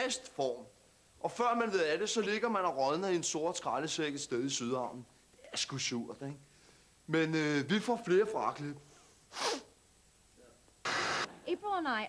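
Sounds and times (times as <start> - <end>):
static hiss: 0.0 - 12.0
man's sharp breath: 9.0 - 9.7.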